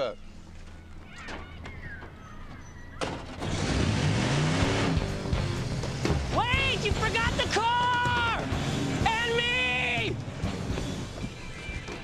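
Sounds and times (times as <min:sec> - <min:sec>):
truck engine revving: 0:03.4 - 0:11.3.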